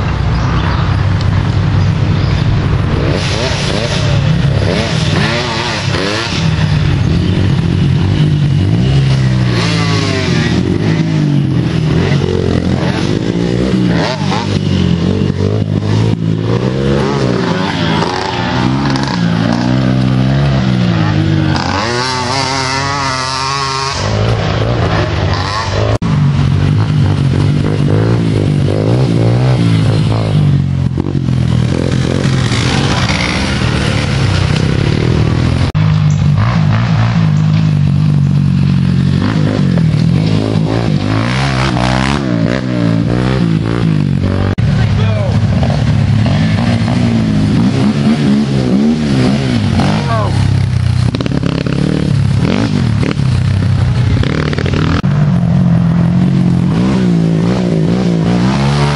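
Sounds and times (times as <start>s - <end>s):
quad engines revving: 0.0s - 58.9s.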